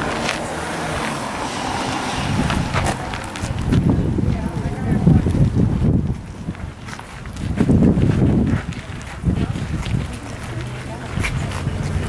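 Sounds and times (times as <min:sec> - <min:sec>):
steady rumble: 0:00.0 - 0:12.0
vehicle passing: 0:00.0 - 0:12.0.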